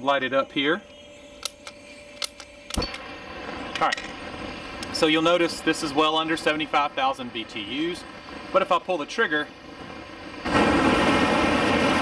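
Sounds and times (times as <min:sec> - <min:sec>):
lighter clicking: 0:01.4 - 0:03.0
propane torch igniting thump: 0:01.4 - 0:07.2, 0:07.8 - 0:12.0.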